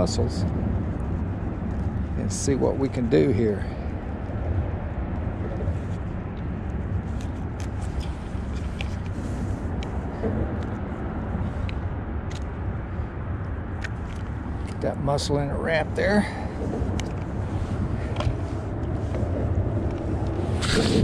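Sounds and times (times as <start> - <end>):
low outdoor rumble: 0.0 - 21.0.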